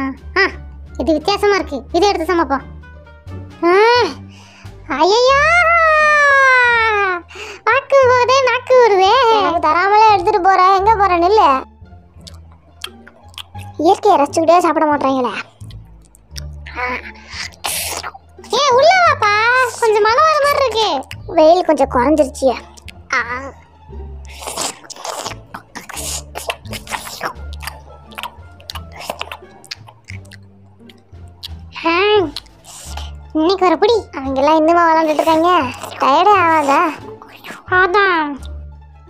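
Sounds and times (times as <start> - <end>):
background music with low bass: 0.0 - 39.0
voice with gliding pitch: 4.8 - 30.4, 31.4 - 38.6
person chewing noodles: 12.1 - 14.0, 15.4 - 18.5, 21.0 - 21.3, 22.6 - 33.3, 35.0 - 37.7.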